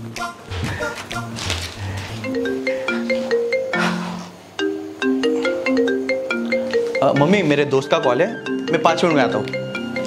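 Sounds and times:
marimba phone ringtone: 0:02.2 - 0:10.0.

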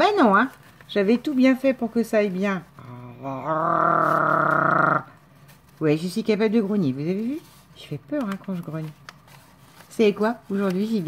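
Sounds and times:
woman growling in frustration: 0:02.8 - 0:05.1.

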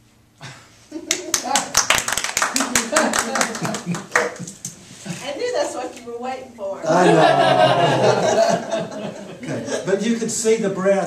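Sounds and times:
people clapping: 0:01.0 - 0:04.8
laughter: 0:06.9 - 0:09.9.

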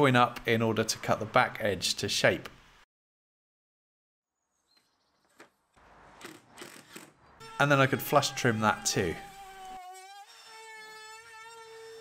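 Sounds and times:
electric router whining: 0:07.4 - 0:12.0.

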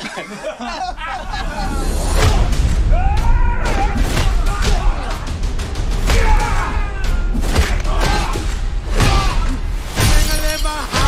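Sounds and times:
music: 0:00.9 - 0:11.0
glass shattering: 0:09.9 - 0:11.0.

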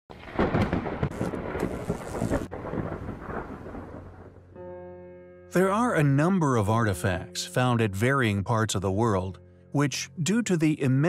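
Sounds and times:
crackling thunder clap: 0:00.1 - 0:04.6
low thunder rumble: 0:00.1 - 0:04.6.

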